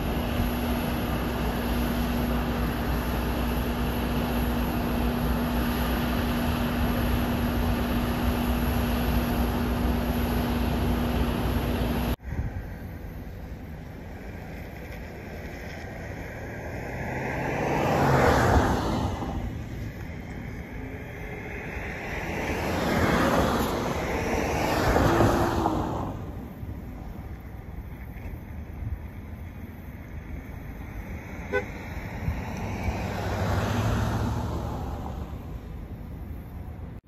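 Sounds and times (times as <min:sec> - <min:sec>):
truck engine running: 0:00.0 - 0:25.0
vehicles driving past: 0:00.0 - 0:37.0.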